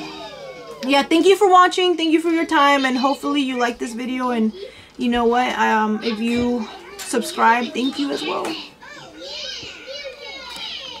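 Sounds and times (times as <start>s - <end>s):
young children playing and talking: 0.0s - 11.0s.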